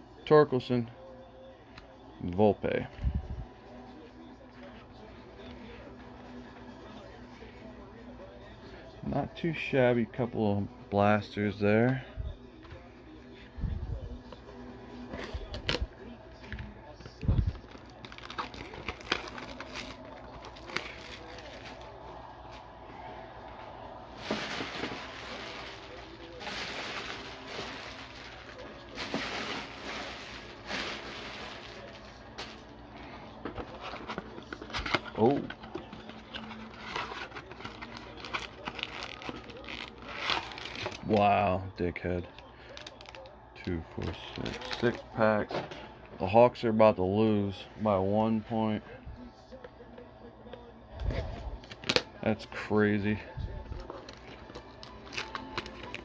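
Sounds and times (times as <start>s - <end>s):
cellophane crinkling and tearing: 17.5s - 22.0s, 24.1s - 32.8s, 33.5s - 41.2s, 42.3s - 45.0s, 51.6s - 52.1s, 53.7s - 56.0s
rustling: 24.1s - 32.7s.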